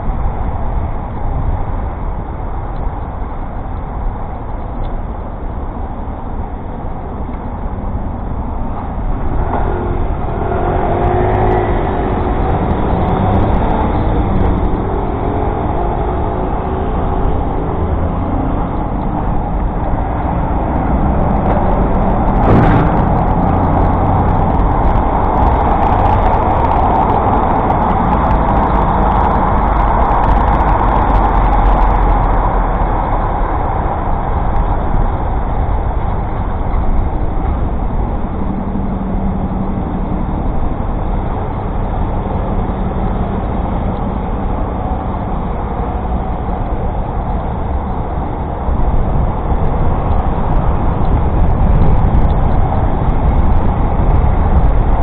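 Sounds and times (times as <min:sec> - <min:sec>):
low rumble: 0:00.0 - 0:55.0
road traffic noise: 0:00.0 - 0:55.0
wavering engine tones: 0:02.3 - 0:55.0.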